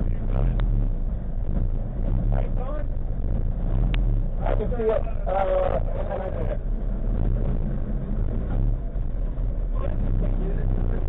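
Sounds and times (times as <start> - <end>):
race car engine idling: 0.0 - 11.0.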